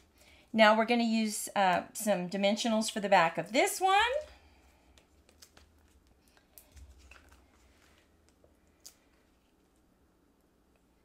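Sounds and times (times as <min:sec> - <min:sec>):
low steady hum: 0:00.0 - 0:11.0
paper rustling and ticks: 0:04.9 - 0:09.7.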